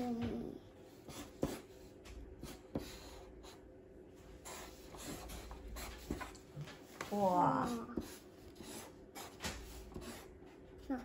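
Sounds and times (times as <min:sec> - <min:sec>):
marker scratching on paper: 0:00.8 - 0:03.7, 0:04.4 - 0:10.6.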